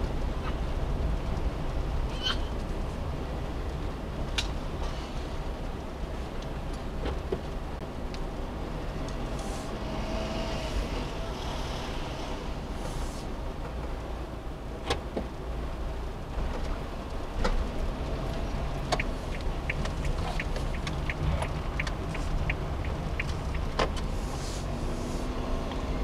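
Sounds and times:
van engine and tyre rumble: 0.0 - 26.0.

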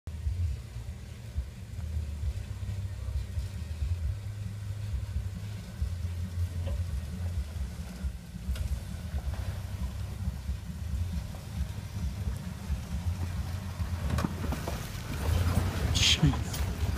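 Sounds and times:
truck engine rumbling: 0.0 - 16.9.

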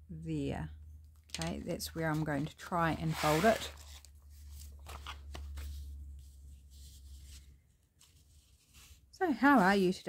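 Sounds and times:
paper rustling: 1.3 - 10.0.

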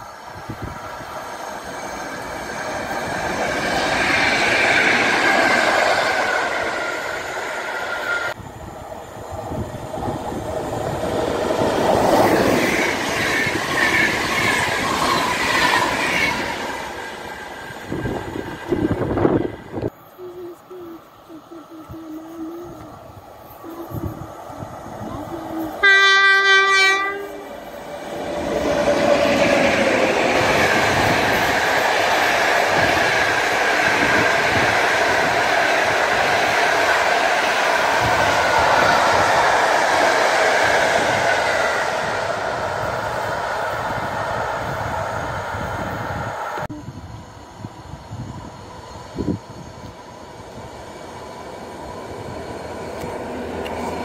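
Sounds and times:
train wheels rumbling on rails: 0.0 - 54.0
locomotive horn: 25.8 - 27.5.

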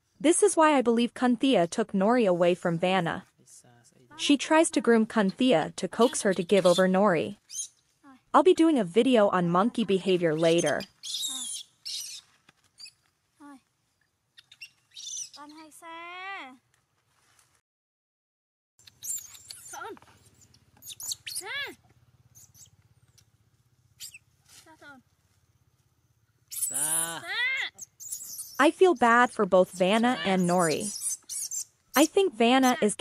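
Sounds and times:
macaques calling: 4.1 - 7.7, 9.8 - 13.0, 19.0 - 22.8, 24.0 - 24.3, 26.5 - 33.0
monkey whining cries: 10.6 - 12.2, 20.8 - 21.8, 26.5 - 28.6.

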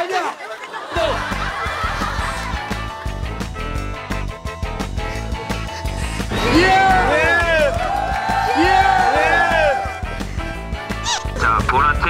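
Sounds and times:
background music: 0.6 - 12.0
people cheering: 6.3 - 10.2.

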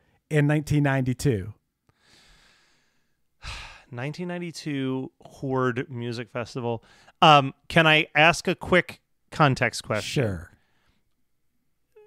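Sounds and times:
man sighing: 3.4 - 3.9.

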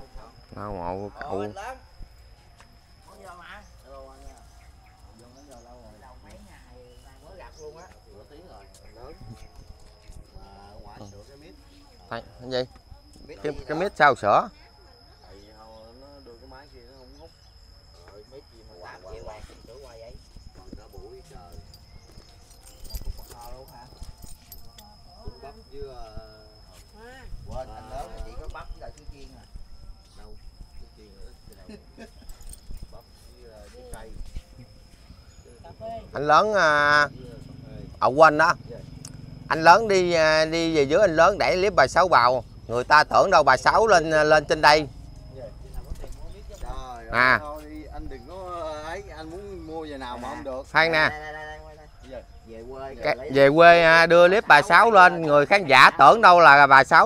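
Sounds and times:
people talking: 0.0 - 1.8, 5.1 - 17.3, 18.0 - 21.8, 22.6 - 34.7, 35.5 - 38.9, 39.5 - 57.0.

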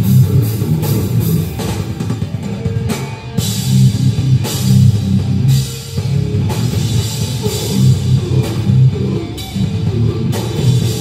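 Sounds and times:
hardcore band playing live: 0.0 - 11.0.

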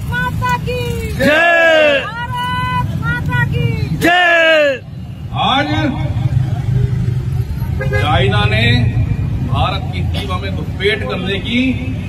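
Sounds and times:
road traffic rumble: 0.0 - 12.0
vehicle engine running nearby: 0.0 - 12.0.

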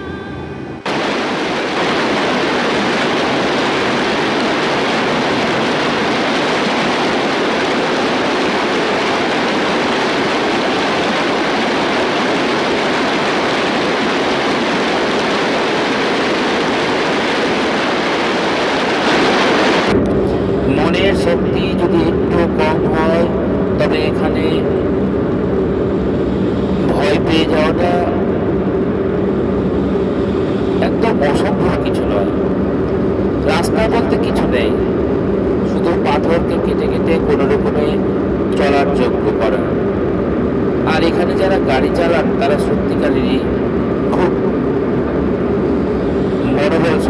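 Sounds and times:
people talking: 0.0 - 0.9, 20.7 - 24.7, 26.8 - 28.3, 30.8 - 32.4, 33.4 - 34.9, 35.6 - 39.8, 40.8 - 44.4, 46.4 - 47.0.

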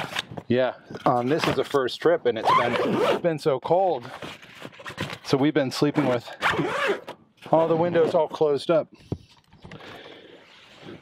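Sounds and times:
tent canvas rasping: 2.4 - 3.2, 6.0 - 8.2.

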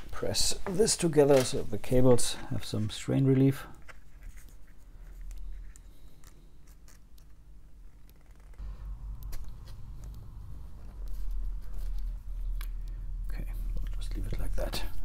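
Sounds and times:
handling rumble: 8.5 - 15.0.

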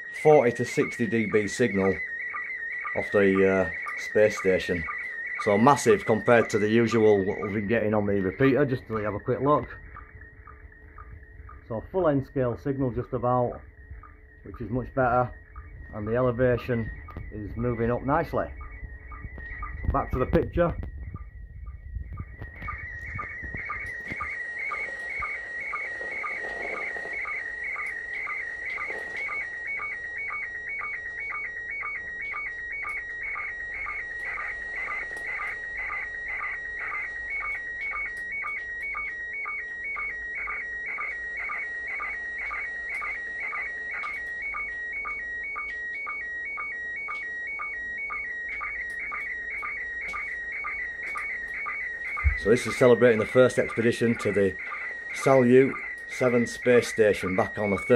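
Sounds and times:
short sync beeps: 0.0 - 57.9
warbling electronic tone: 0.0 - 57.9.

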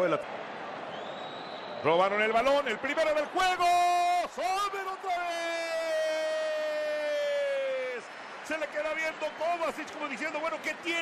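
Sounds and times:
commentator's long held shout: 2.9 - 8.0.

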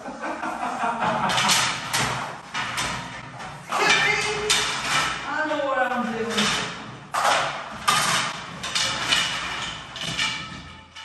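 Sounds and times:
wooden bed slats clattering: 1.1 - 5.3, 6.3 - 11.0.

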